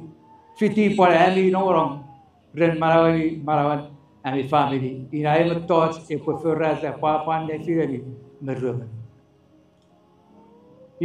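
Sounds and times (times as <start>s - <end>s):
man speaking: 0.0s - 2.0s, 2.6s - 9.1s.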